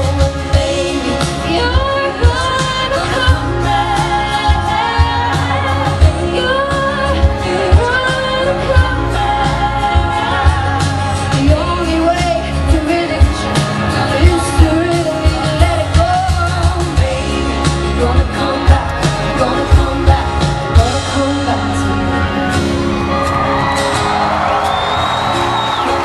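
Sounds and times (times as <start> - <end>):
drums steady beat: 0.0 - 21.9
woman singing: 0.0 - 22.4
bass and guitar: 0.0 - 26.0.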